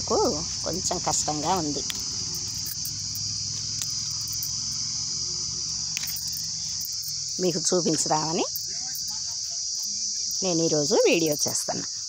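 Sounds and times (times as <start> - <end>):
person's voice: 0.0 - 1.9
high-pitched insect chorus: 0.0 - 12.0.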